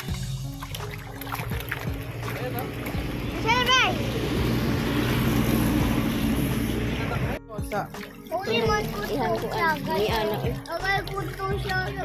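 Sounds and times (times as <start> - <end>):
fish splashing at water surface: 0.0 - 3.4, 7.8 - 12.0.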